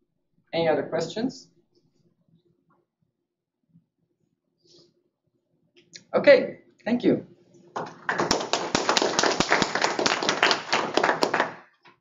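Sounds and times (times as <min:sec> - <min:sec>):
audience applauding: 0:07.8 - 0:11.7.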